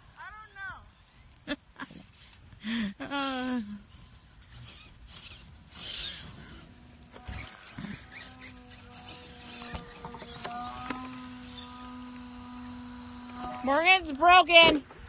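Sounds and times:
electric motor whine: 0:03.1 - 0:15.0.

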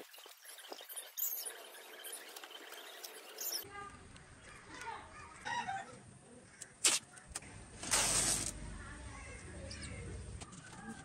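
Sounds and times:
tape pulled from roll: 0:06.8 - 0:07.1, 0:07.8 - 0:08.6.

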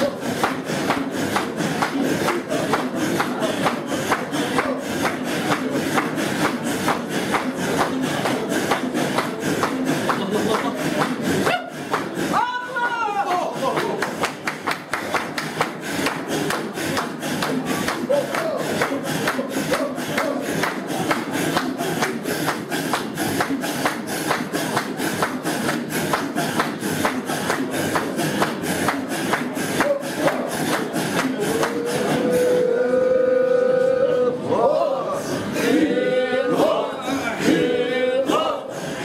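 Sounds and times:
men chanting in rhythmic breaths: 0:00.0 - 0:39.0
voice holding a long sung note: 0:31.6 - 0:34.5.

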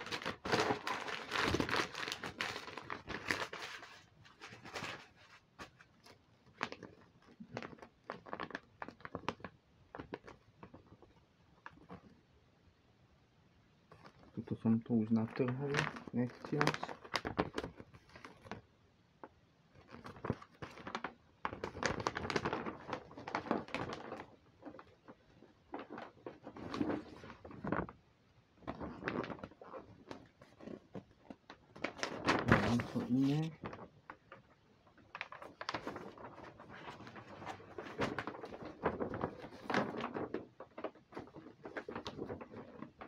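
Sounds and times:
paper crumpling rustle: 0:00.0 - 0:11.1, 0:13.9 - 0:18.6, 0:19.8 - 0:28.0, 0:28.6 - 0:43.0.

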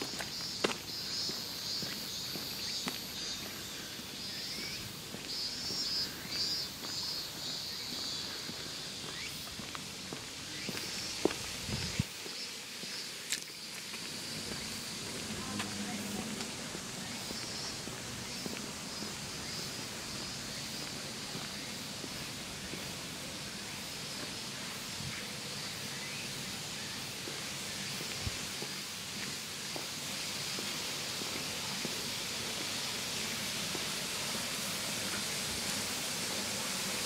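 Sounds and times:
footsteps on brick paving: 0:00.0 - 0:25.2, 0:26.7 - 0:35.8.

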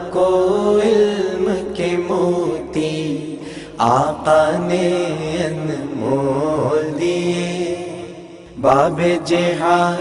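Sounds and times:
chanted vocal drone: 0:00.0 - 0:10.0.

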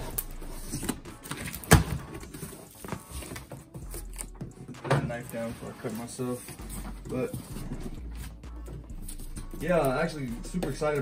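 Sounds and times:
cardboard scraping and rustling: 0:00.0 - 0:08.4.

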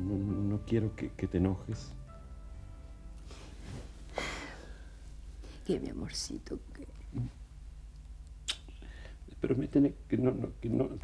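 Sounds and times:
low steady hum: 0:00.0 - 0:11.0
sharp click with hiss: 0:08.4 - 0:08.8.

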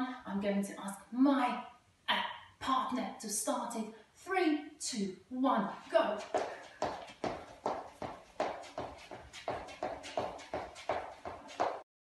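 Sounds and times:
footsteps running on wooden floor: 0:06.0 - 0:11.9.

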